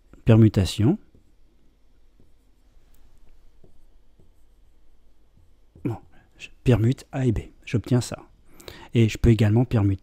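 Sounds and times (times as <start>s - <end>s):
marker pen writing on whiteboard: 0.1s - 6.9s.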